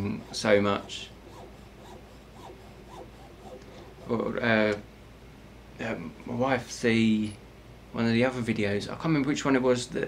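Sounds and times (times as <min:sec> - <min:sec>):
saw cutting metal: 0:00.0 - 0:04.3.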